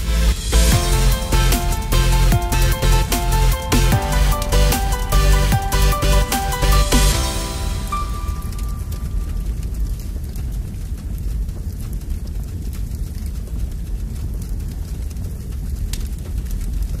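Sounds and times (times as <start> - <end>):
low rumbling: 0.0 - 17.0.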